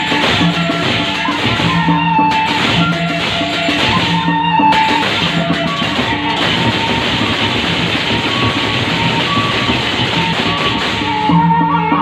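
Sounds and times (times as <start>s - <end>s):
hand cymbals clashing: 0.0s - 11.6s
large barrel drums: 0.0s - 12.0s.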